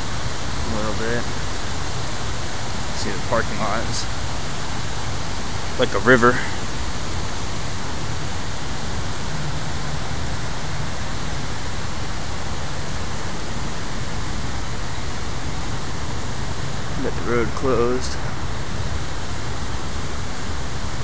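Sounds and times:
rushing floodwater: 0.0s - 21.0s.

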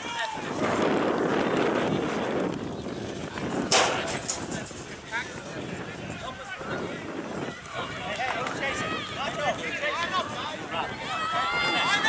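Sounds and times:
wind on microphone: 0.0s - 12.0s
sharp impact: 3.7s - 4.8s.

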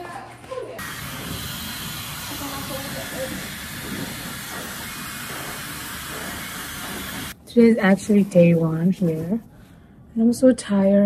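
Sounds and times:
hair dryer blowing: 0.8s - 7.4s.

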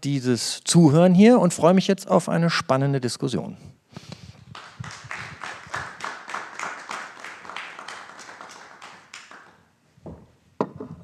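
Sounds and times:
small audience clapping: 4.4s - 9.7s.

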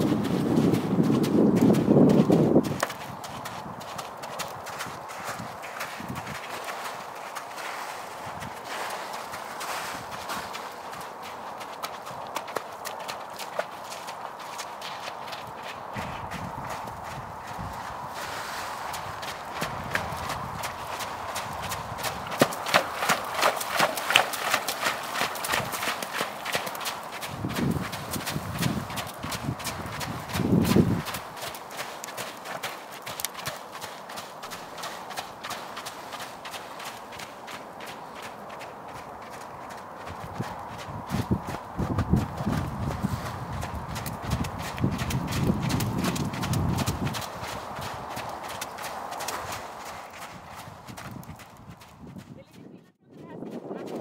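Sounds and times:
horse hooves trotting on mud: 0.0s - 54.0s
low rumbles: 15.8s - 18.1s.

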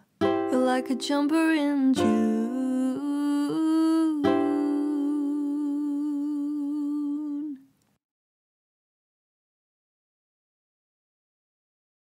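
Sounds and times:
ukulele strum: 0.0s - 2.9s, 4.2s - 5.1s
woman humming with vibrato: 2.0s - 7.6s.

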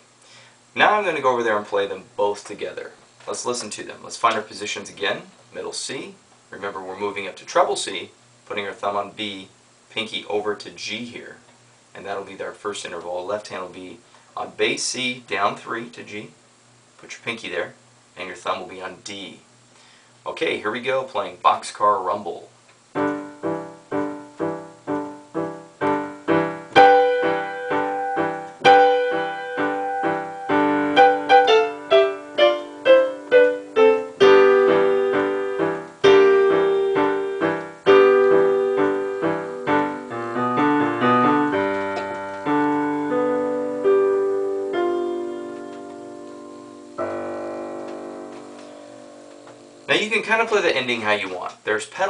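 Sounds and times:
digital piano playing: 22.9s - 51.1s.

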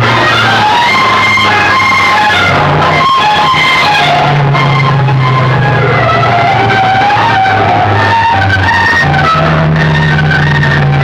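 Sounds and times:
loud music through horn loudspeakers: 0.0s - 11.0s.

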